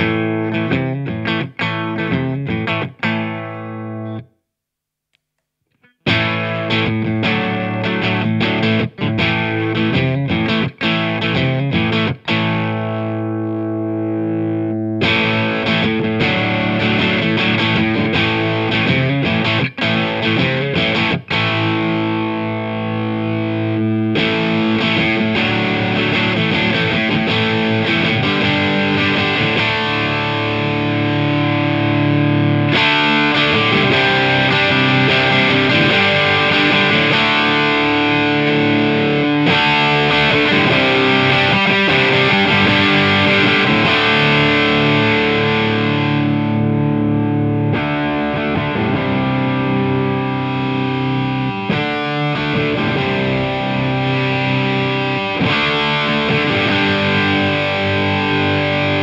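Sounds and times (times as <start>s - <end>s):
overdriven electric guitar: 0.0s - 4.3s, 5.7s - 59.0s.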